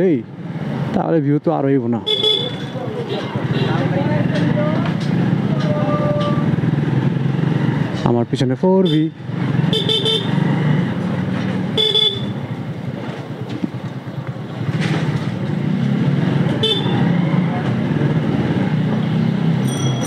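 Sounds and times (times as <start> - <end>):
horn toots: 2.0 - 3.8, 8.8 - 10.5, 11.7 - 12.4, 16.6 - 17.2
motorcycle engine running: 2.1 - 8.1, 8.8 - 20.0
high-pitched ringing: 19.6 - 20.0.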